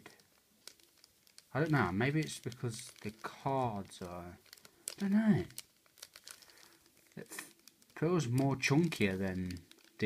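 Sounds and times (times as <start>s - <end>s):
foil wrappers crinkling: 0.0s - 10.0s.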